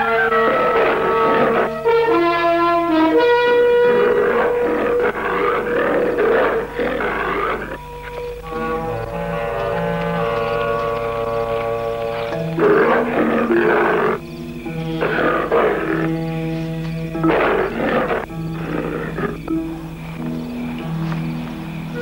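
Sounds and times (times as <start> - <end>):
dramatic orchestral chords: 0.0 - 22.0
tiger growling and roaring: 0.0 - 22.0.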